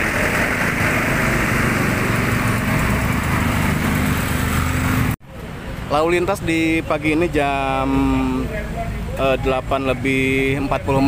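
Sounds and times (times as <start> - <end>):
truck and motorcycle engines: 0.0 - 11.0.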